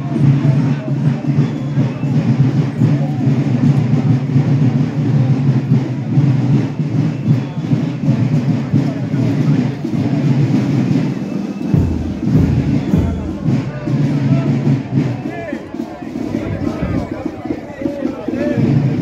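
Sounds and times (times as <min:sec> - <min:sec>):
crowd voices: 0:00.0 - 0:19.0
marching band music: 0:00.0 - 0:19.0.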